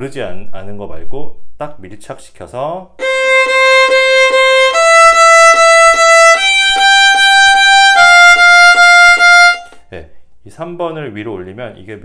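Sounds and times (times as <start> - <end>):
solo violin playing: 3.0 - 9.9.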